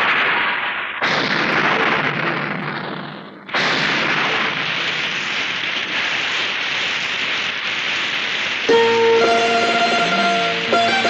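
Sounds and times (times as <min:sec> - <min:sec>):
thunderclap: 0:00.0 - 0:11.0
heavy rain hissing: 0:04.6 - 0:11.0.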